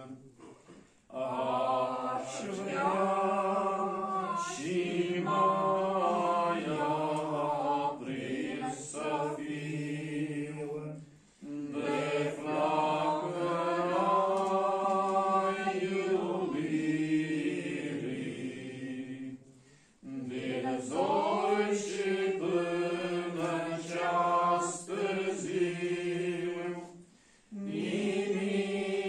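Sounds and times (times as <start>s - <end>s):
congregation singing a hymn: 0.0s - 29.0s.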